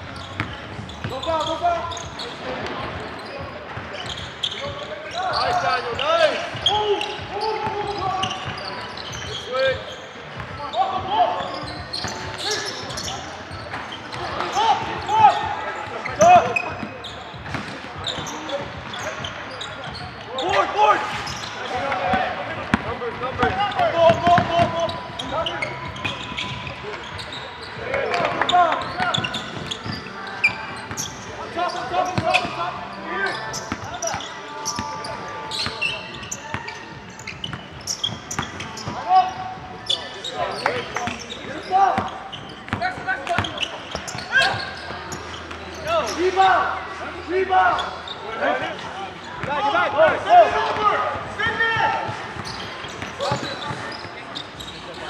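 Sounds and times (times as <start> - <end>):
players calling out: 0.1 - 55.0.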